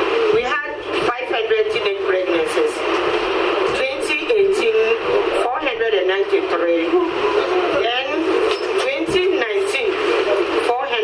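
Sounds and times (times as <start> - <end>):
woman talking into microphone: 0.3 - 2.9, 3.7 - 7.2, 7.8 - 10.0, 10.6 - 11.0.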